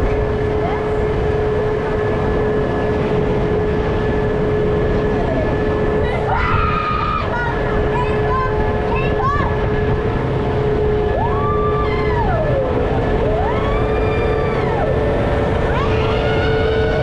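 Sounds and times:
coaster train climbing lift hill: 0:00.0 - 0:17.0
riders whooping: 0:05.9 - 0:08.3, 0:10.8 - 0:17.0.

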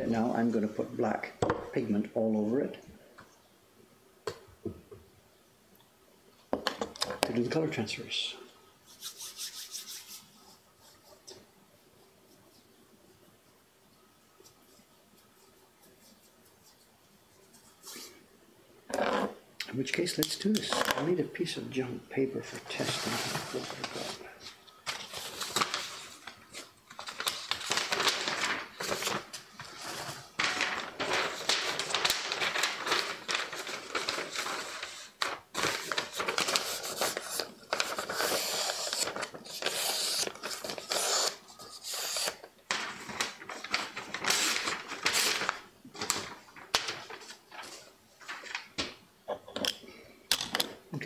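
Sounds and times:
paper rustling and scraping: 0:22.4 - 0:48.8.

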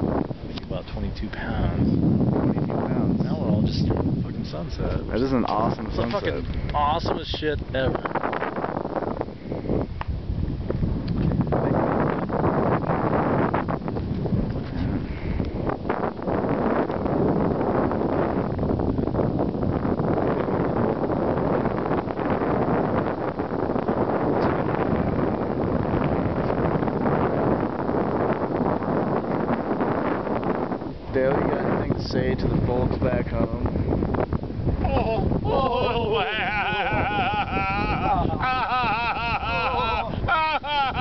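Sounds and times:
wind on microphone: 0:00.0 - 0:41.0.

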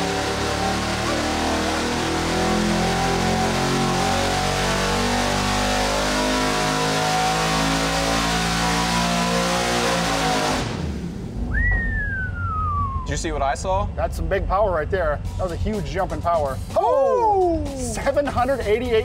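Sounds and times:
supercharged engine revving: 0:00.0 - 0:11.4.

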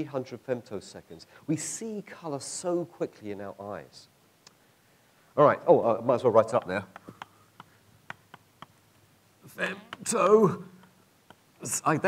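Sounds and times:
chalk tapping on blackboard: 0:06.1 - 0:08.9, 0:09.8 - 0:11.6.

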